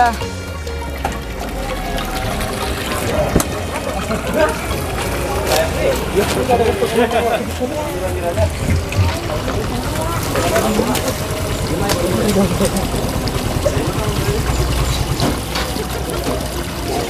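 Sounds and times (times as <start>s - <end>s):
people talking indistinctly: 0.0s - 17.0s.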